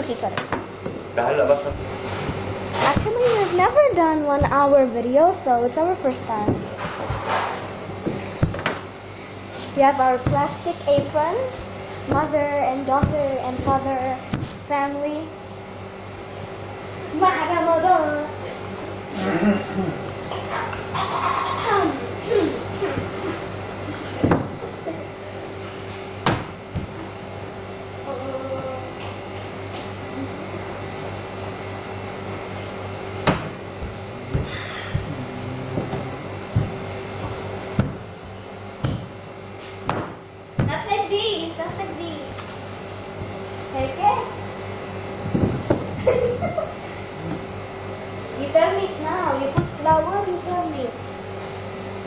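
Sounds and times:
steady machine hum: 0.0 - 52.0
indistinct voices murmuring: 33.9 - 37.2.

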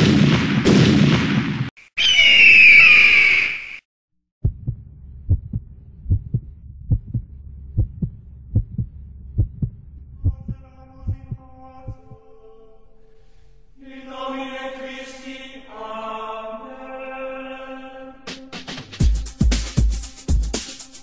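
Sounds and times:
heartbeat thumps: 4.4 - 12.2
loud music: 18.3 - 21.0.

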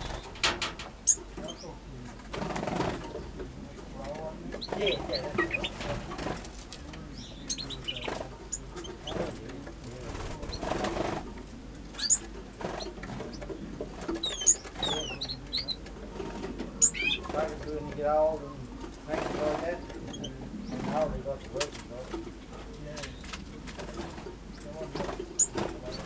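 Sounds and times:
finches chirping and whistling: 0.0 - 1.8, 4.6 - 5.9, 7.1 - 9.2, 11.9 - 13.4, 14.2 - 15.8, 16.8 - 17.3, 19.8 - 21.0, 25.2 - 26.0
lower wavering bird calls: 0.0 - 1.8, 4.6 - 5.8, 7.0 - 9.2, 11.9 - 12.3, 14.2 - 15.8, 16.8 - 17.3.

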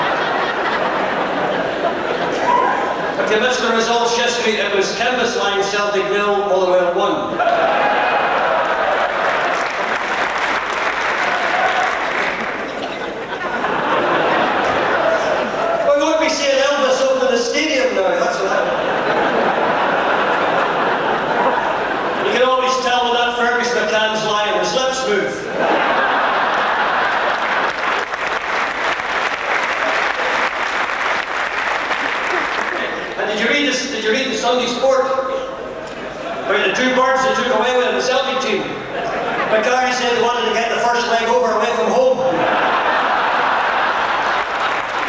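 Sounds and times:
audience applauding: 7.5 - 16.0, 25.8 - 33.2, 42.6 - 45.0.

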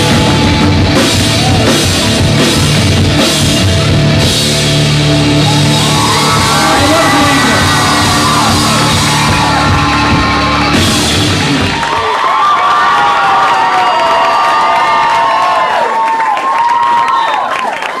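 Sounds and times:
electric guitar feedback: 0.0 - 11.8
rock band final chord: 0.0 - 11.9
crowd cheering: 0.0 - 18.0.

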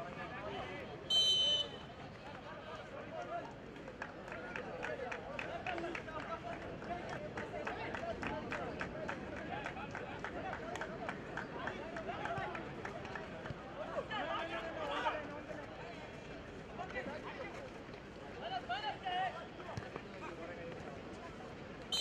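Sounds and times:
crowd shouting and chattering: 0.0 - 22.0.

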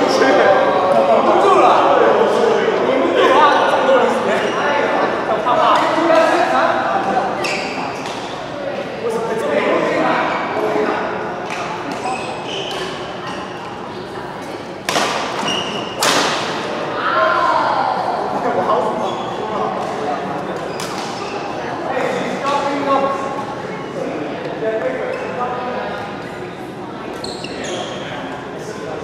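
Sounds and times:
racket hitting shuttlecock: 14.8 - 16.6.

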